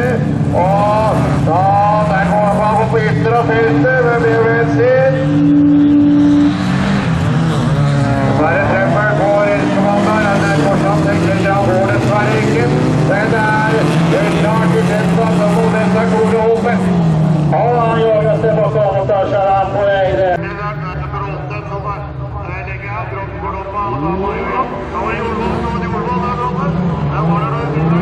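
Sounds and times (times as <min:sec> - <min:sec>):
race car engines revving: 0:00.0 - 0:28.0.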